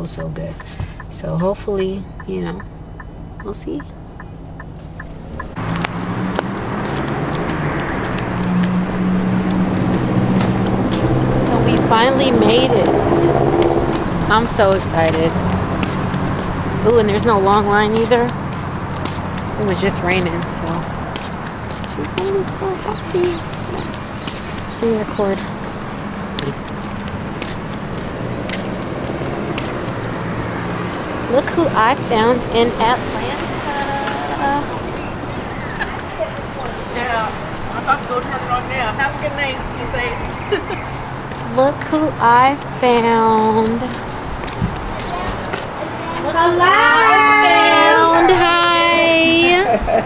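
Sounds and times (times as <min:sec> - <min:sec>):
sharp ticks: 0:00.0 - 0:33.1, 0:37.5 - 0:45.8
low engine hum: 0:00.0 - 0:50.0
traffic noise: 0:00.0 - 0:50.0.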